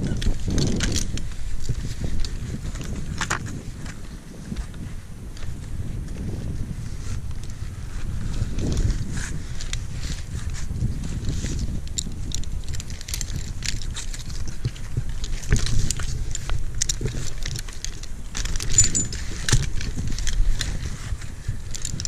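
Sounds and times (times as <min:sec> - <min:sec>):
metal carabiners clinking: 0:00.0 - 0:04.0, 0:11.5 - 0:22.0
steady low rumble: 0:00.0 - 0:22.0.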